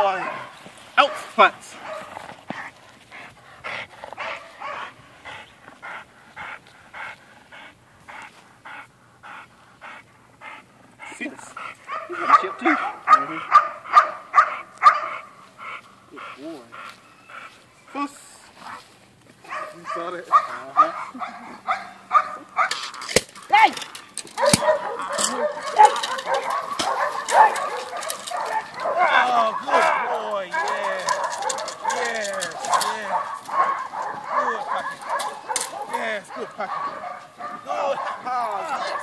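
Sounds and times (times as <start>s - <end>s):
dog barking: 0.0s - 2.2s, 4.2s - 5.0s, 11.9s - 15.4s, 19.4s - 22.8s, 24.4s - 39.0s.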